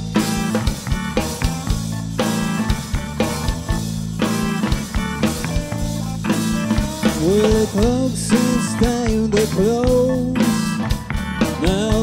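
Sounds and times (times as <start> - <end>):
bending guitar melody: 0.0 - 12.0
live rock band playing blues: 0.0 - 12.0.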